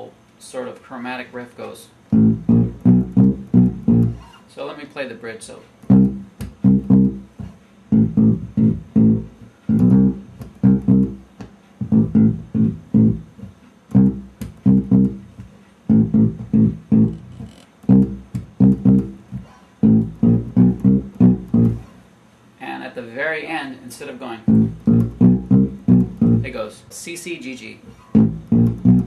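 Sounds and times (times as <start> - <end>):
electric bass guitar plucked notes: 2.1 - 4.3, 5.8 - 22.0, 24.4 - 26.7, 28.1 - 29.0.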